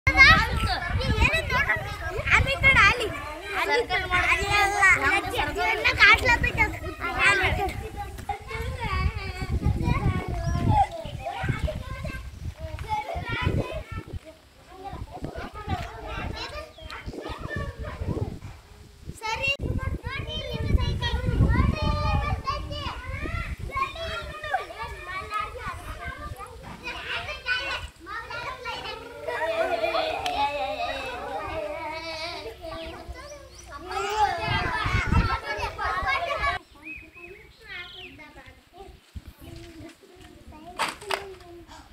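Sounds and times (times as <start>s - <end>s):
children talking and exclaiming: 0.0s - 41.9s
wind rumble on microphone: 0.1s - 24.6s, 34.2s - 36.6s.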